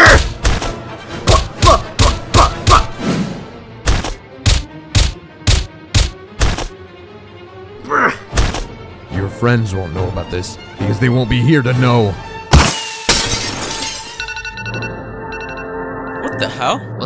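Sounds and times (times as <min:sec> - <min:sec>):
cartoon punch impacts: 0:00.0 - 0:03.0, 0:12.5 - 0:13.0
footstep-like thuds: 0:03.8 - 0:06.8.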